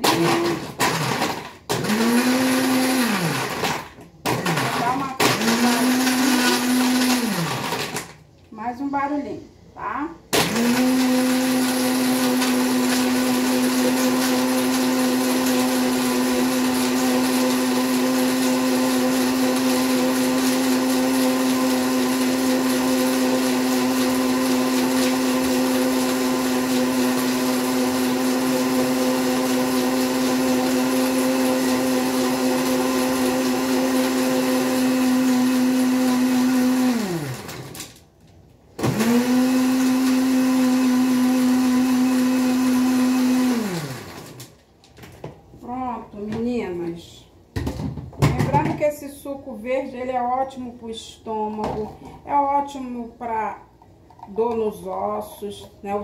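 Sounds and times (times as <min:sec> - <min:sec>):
blender motor running: 0:00.0 - 0:08.1, 0:10.4 - 0:38.0, 0:38.8 - 0:44.5.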